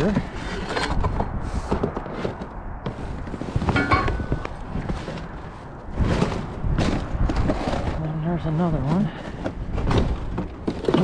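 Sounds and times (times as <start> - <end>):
debris clattering: 3.6 - 4.6.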